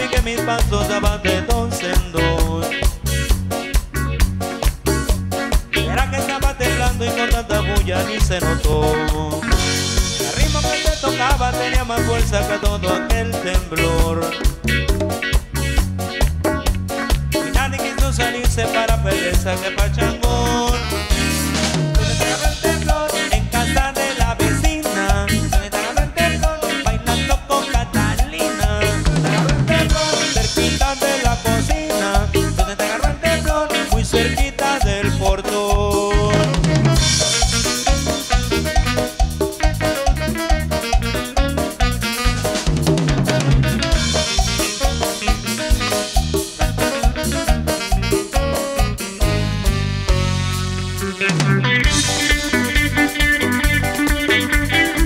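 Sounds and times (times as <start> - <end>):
dance band playing: 0.0 - 55.0.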